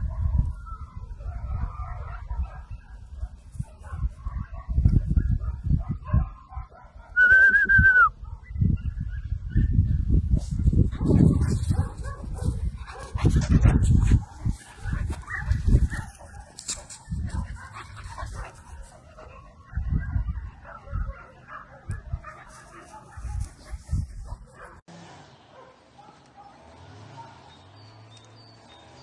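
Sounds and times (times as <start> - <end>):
wind gusting on microphone: 0.0 - 24.9
small dog barking: 11.3 - 13.2, 17.2 - 24.8.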